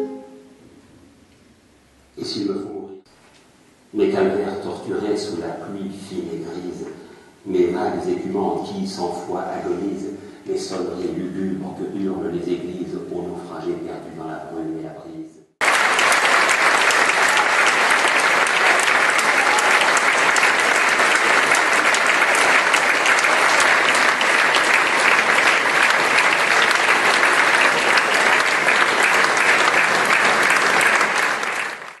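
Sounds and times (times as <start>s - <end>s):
audience applauding: 15.6s - 32.0s.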